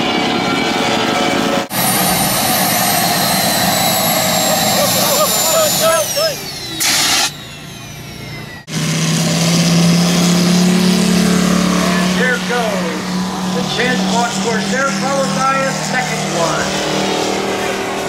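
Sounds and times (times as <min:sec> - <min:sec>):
jet turbine whining: 0:00.0 - 0:18.0
radial engine running: 0:00.0 - 0:18.0.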